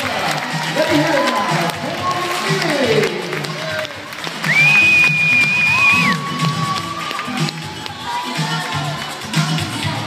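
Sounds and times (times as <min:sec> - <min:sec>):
crowd cheering: 0:03.6 - 0:08.9.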